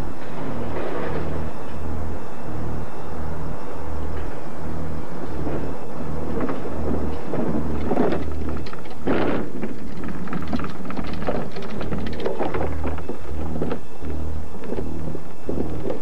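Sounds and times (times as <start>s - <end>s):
thunder crackling: 0.0s - 16.0s
thunder rumbling: 0.0s - 16.0s.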